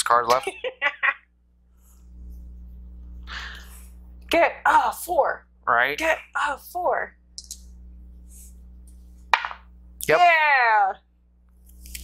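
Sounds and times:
die knocking in dice tray: 9.4 - 9.6.

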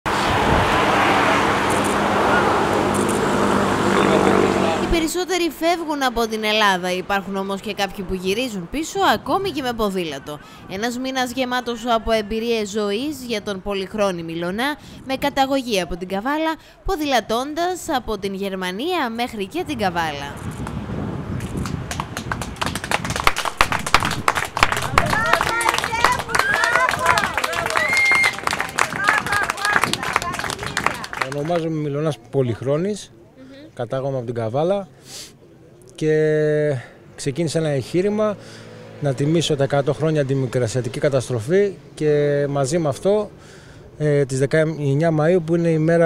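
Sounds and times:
steady outdoor rushing noise: 0.1 - 16.8, 19.0 - 46.0
people clapping: 21.4 - 31.7
faint voices: 24.7 - 33.8.

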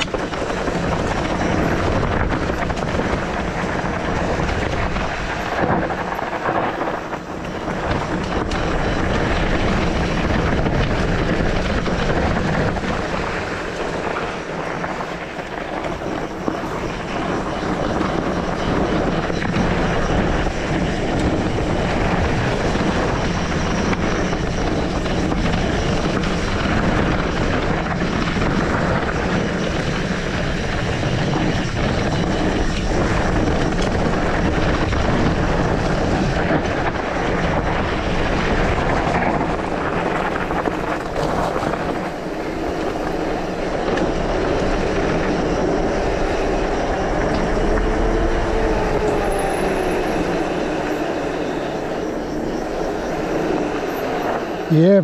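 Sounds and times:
bike tyres on gravel: 0.0 - 55.0
wind on microphone: 0.0 - 55.0.

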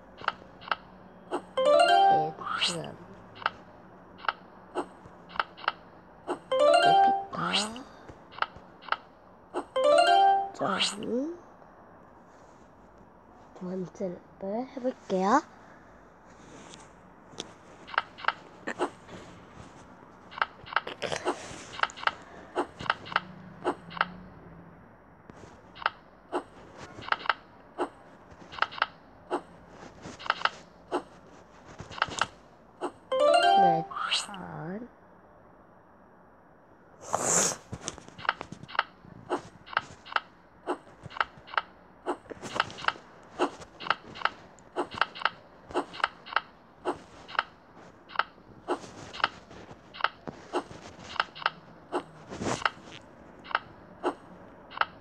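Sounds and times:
rising run of plucked notes: 1.6 - 2.5, 6.5 - 7.4, 9.8 - 10.6, 33.1 - 34.0
recorded voice announcing: 33.4 - 34.9.

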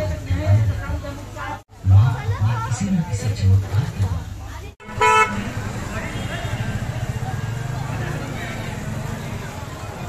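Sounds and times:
crowd noise: 0.0 - 10.0
vehicle horn beep: 4.8 - 5.5.

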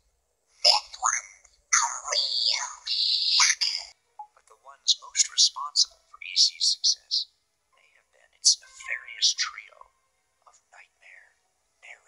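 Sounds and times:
person whispering: 1.8 - 12.0.

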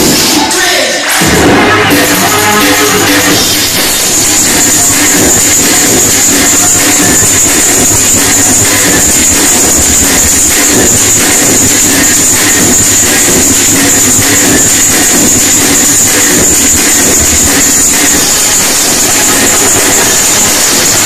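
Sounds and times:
crowd noise: 0.0 - 21.0
loud club dance music: 0.0 - 21.0.

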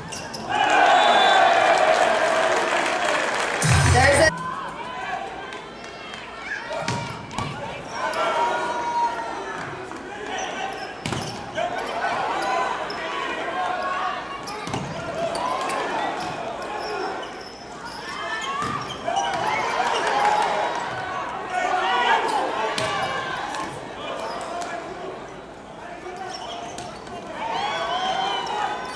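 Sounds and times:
players and crowd shouting: 0.0 - 28.9.

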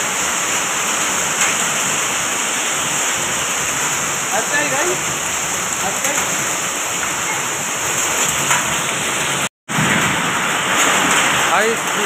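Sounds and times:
hail and heavy rain falling: 0.0 - 12.0.

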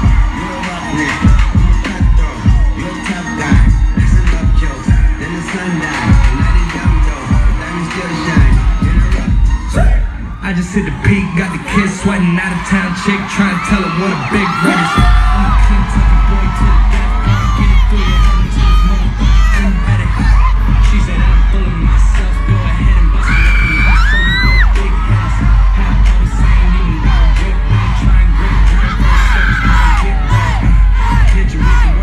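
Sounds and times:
crowd screaming and cheering: 0.0 - 32.0
dance music with heavy bass: 0.0 - 32.0.

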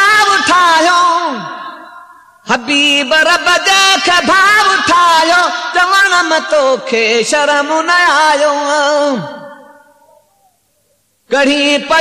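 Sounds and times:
man singing unaccompanied: 0.0 - 10.3, 11.2 - 12.0.

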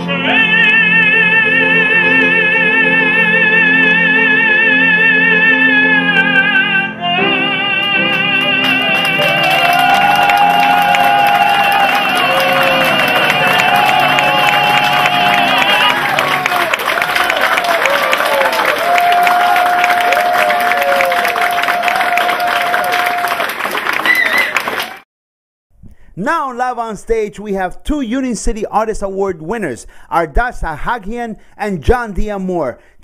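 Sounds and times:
piano chords: 0.0 - 18.9
audience applauding and cheering: 7.9 - 25.1
shouted calls: 24.0 - 24.7.

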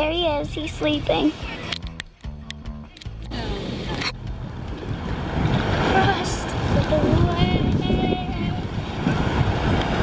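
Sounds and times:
water noise: 0.0 - 10.0
wind on microphone: 3.3 - 10.0.

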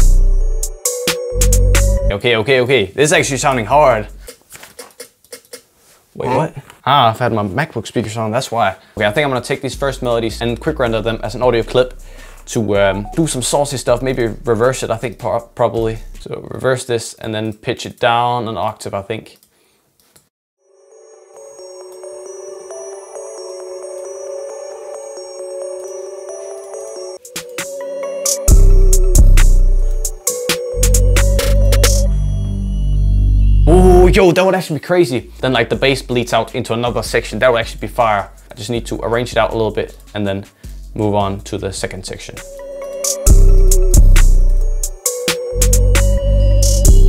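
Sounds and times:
synth melody: 0.0 - 2.2, 12.8 - 14.8, 20.6 - 34.4, 42.4 - 47.0.

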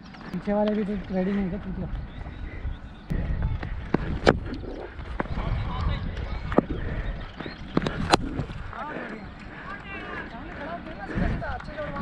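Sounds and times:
wind rumbling on camera: 0.0 - 12.0.

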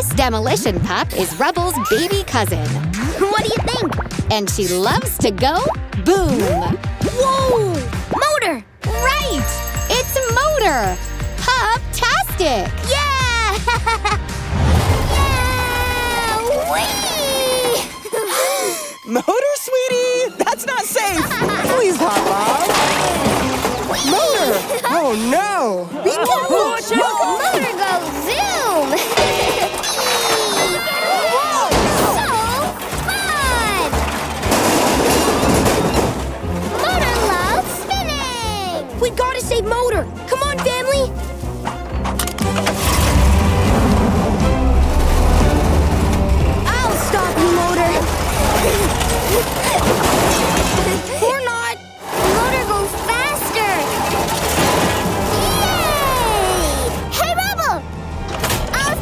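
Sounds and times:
cartoon music: 0.4 - 18.8, 35.5 - 41.2, 44.6 - 57.8
crash-like noise: 14.5 - 15.4, 42.7 - 51.0.

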